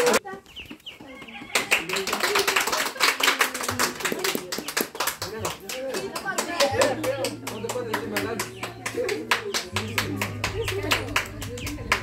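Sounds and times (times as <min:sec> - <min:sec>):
people clapping: 0:00.0 - 0:00.3, 0:01.0 - 0:12.0
voices: 0:00.0 - 0:12.0.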